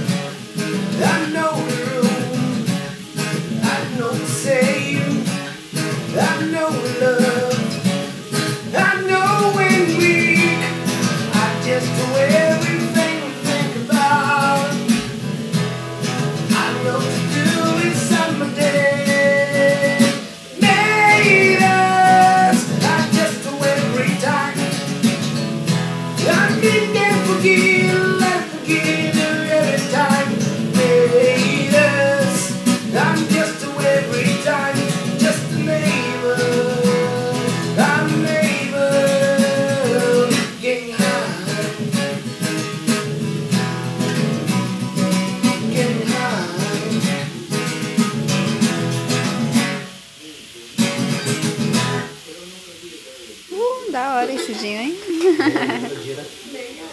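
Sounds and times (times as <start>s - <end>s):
acoustic guitar strumming: 0.0s - 52.4s, 53.8s - 56.4s
person singing a worship song: 0.9s - 15.1s, 16.4s - 24.8s, 26.2s - 42.2s, 45.4s - 47.4s.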